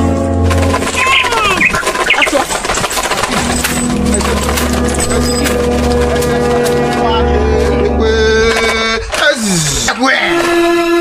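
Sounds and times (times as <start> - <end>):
bird-like chirps and whistles: 1.0 - 2.4.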